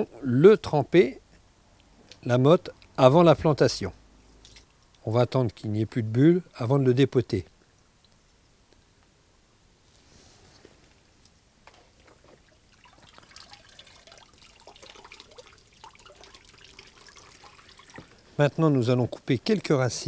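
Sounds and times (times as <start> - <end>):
water bubbling and dripping: 12.0 - 18.3.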